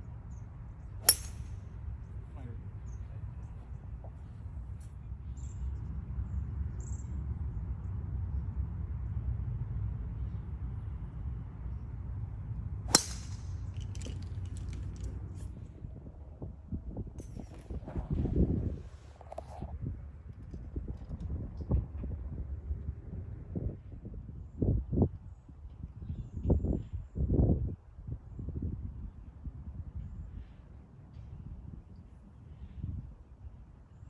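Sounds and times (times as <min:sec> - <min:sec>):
wind rumble on microphone: 0:00.0 - 0:34.0
sharp crack: 0:01.1 - 0:01.6, 0:12.9 - 0:14.9.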